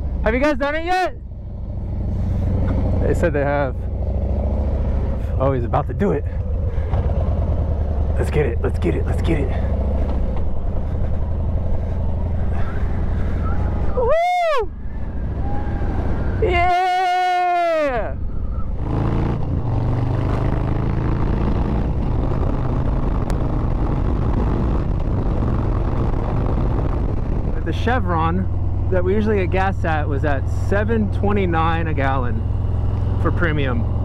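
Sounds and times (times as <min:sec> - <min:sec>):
motorcycle engine running: 0:00.0 - 0:34.0.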